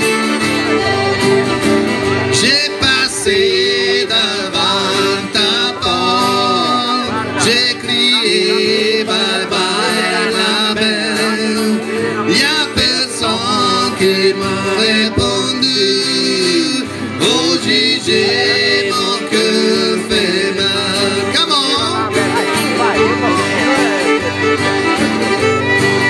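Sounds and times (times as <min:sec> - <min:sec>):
button accordion: 0:00.0 - 0:26.0
fiddle: 0:00.0 - 0:26.0
strummed acoustic guitar: 0:00.0 - 0:26.0
man singing: 0:02.2 - 0:24.2.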